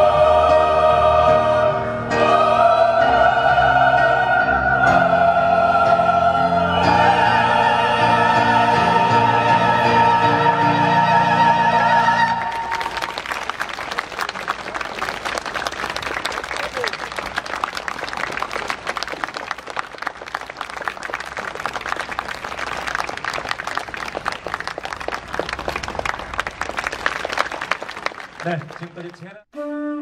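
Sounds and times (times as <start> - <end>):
choir singing chord: 0.0 - 12.8
audience applauding: 12.4 - 29.4.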